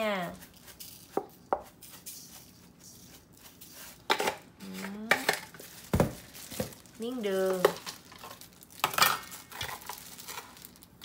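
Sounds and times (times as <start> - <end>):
salt sprinkling on chicken: 0.3 - 4.1.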